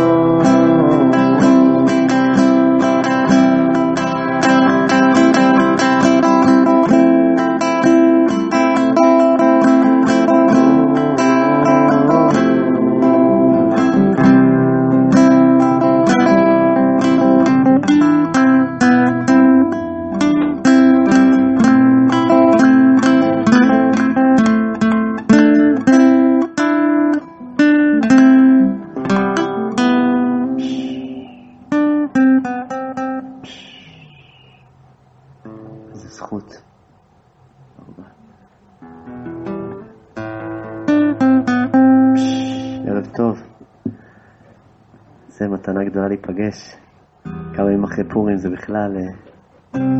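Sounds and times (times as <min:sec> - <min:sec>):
acoustic guitar strumming: 0:00.0 - 0:45.4, 0:46.8 - 0:49.9.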